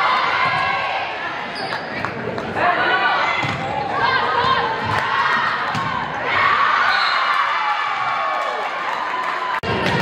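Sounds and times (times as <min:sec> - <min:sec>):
people shouting in a hall: 0:00.0 - 0:01.4, 0:02.6 - 0:10.0.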